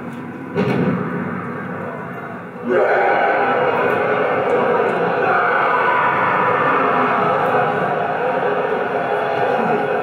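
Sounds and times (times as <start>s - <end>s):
film soundtrack over loudspeakers: 0.0s - 10.0s.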